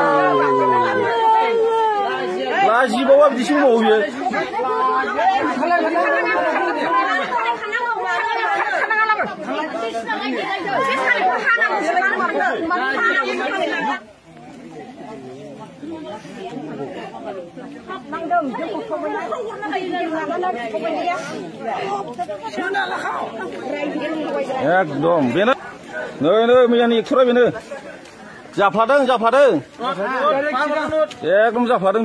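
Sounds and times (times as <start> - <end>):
people talking at once: 0.0 - 32.0.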